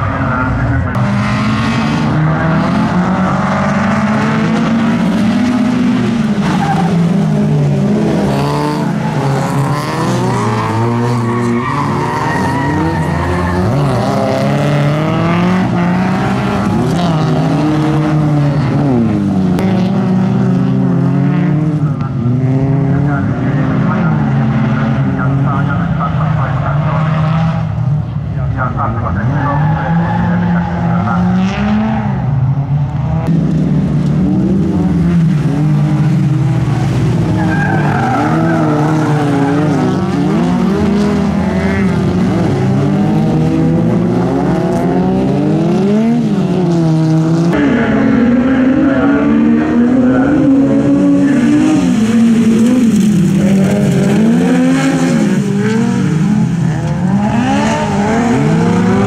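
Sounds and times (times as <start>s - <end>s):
car engines revving and racing: 0.0s - 59.0s.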